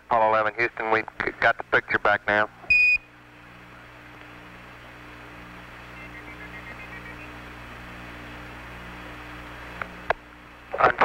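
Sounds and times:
low mains hum: 0.0 - 11.0
radio static hiss: 0.0 - 11.0.

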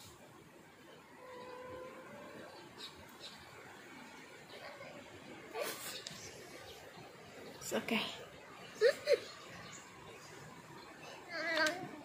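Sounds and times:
girl sniffing: 5.6 - 6.0.

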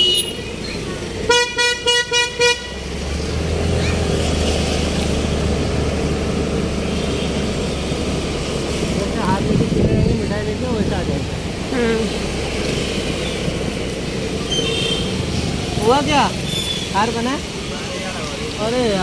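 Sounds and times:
vehicle horn beeping: 0.0 - 0.5, 1.3 - 2.8, 14.5 - 15.2
motor scooter engine and road noise: 0.0 - 19.0.

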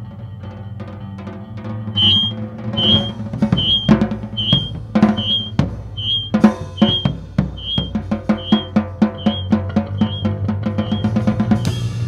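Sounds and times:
short high ping: 2.0 - 10.2
snare and bass drum strikes: 2.0 - 12.0.

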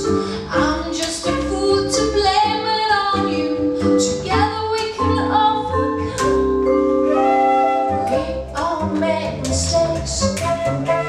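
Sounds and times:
woman singing: 0.0 - 6.5, 7.8 - 11.0
acoustic band playing: 0.0 - 11.0
upright bass: 0.0 - 11.0.

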